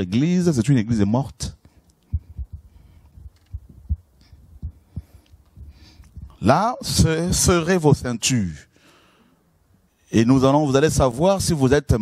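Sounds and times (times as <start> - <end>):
microphone handling thumps: 1.5 - 7.6.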